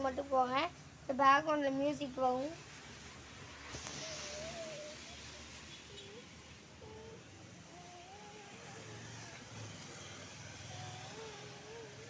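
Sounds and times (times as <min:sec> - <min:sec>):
faint road traffic rumble: 0:00.0 - 0:12.0
vehicle passing: 0:02.6 - 0:12.0.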